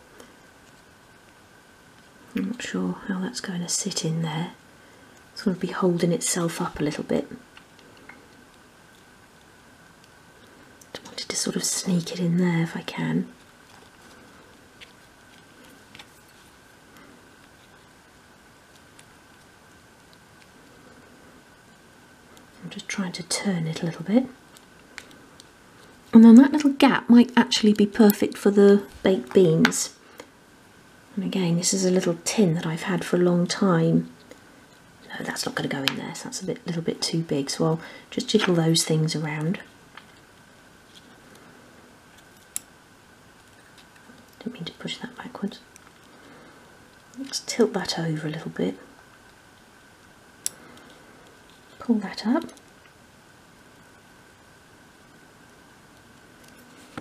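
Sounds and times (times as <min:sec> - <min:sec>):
faint steady high whine: 0:00.0 - 0:57.0.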